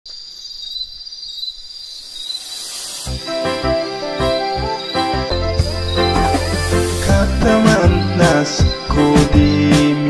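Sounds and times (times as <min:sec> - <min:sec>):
insects trilling: 0:00.1 - 0:09.0.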